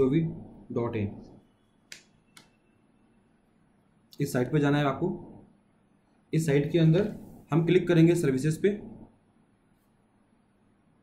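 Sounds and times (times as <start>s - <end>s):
person speaking: 6.3s - 9.1s.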